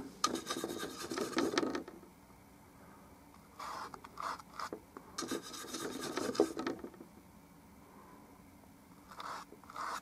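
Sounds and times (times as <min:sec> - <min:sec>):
paintbrush scratching on canvas: 0:00.3 - 0:01.6, 0:05.2 - 0:06.6, 0:09.2 - 0:10.0.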